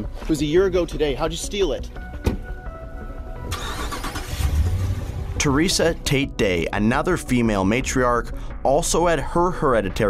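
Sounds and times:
background music: 0.0 - 10.0
truck engine starting: 3.4 - 5.8.

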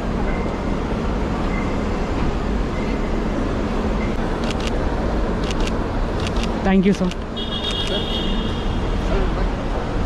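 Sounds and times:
traffic rumble: 0.0 - 10.0.

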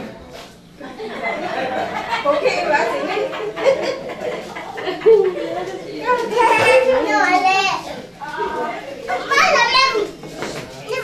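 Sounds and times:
children calling and chattering: 0.0 - 11.0.

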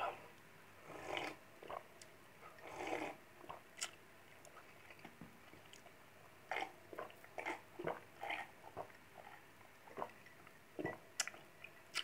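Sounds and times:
person gulping a drink: 6.5 - 10.2.

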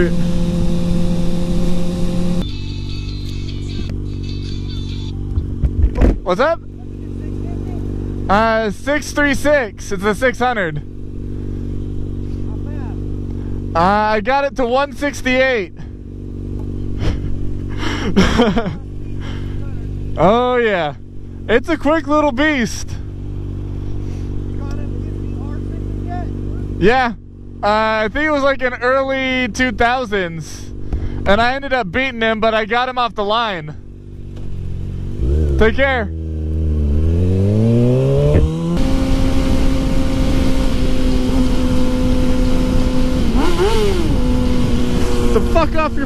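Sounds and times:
motorcycle engine idling: 0.0 - 46.0
faint voice talking: 2.4 - 5.3.

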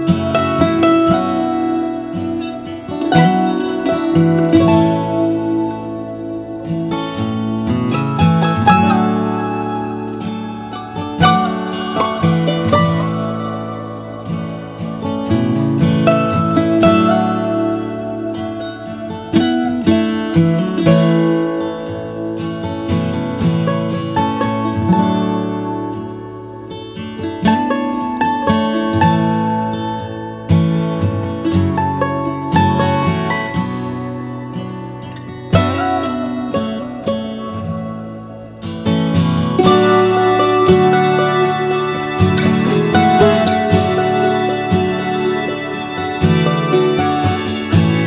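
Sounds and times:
acoustic guitar music: 0.0 - 48.0.

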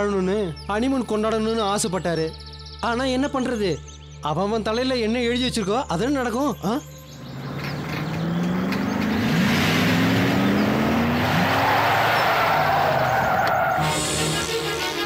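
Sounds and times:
background music: 0.0 - 15.0
car driving fast: 7.1 - 14.0.

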